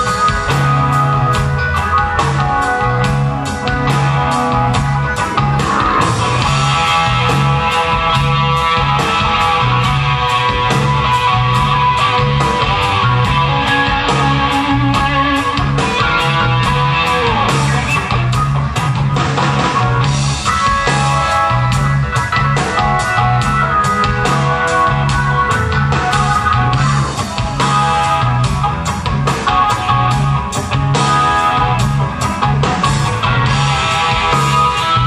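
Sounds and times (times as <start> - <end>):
drums with cymbal beat: 0.0 - 35.0
electric guitar: 0.0 - 35.0
pulsing bass line: 0.0 - 35.0.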